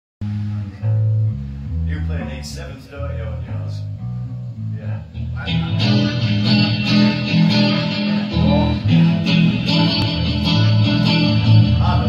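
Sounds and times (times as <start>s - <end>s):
electric guitar single low notes: 0.2s - 12.0s.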